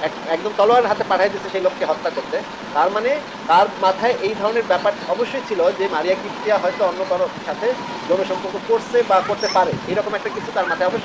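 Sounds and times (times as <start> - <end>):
background hiss: 0.0 - 11.0
person talking: 0.0 - 11.0.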